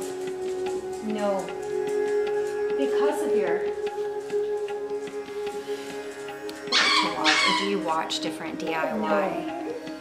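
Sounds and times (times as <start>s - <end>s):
background music with drone: 0.0s - 10.0s
dog barking: 6.7s - 7.7s.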